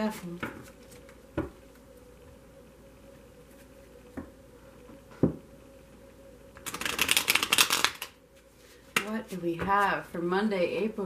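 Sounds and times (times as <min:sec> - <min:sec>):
cards riffle-shuffled: 0:06.6 - 0:08.2.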